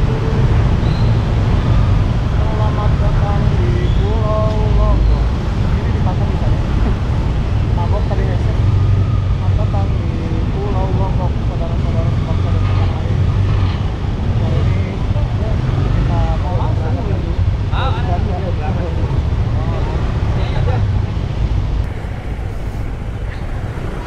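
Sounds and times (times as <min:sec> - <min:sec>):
people talking: 0:00.0 - 0:01.0, 0:01.7 - 0:06.9, 0:07.7 - 0:13.5, 0:14.4 - 0:20.9
engine rumble: 0:00.0 - 0:24.0.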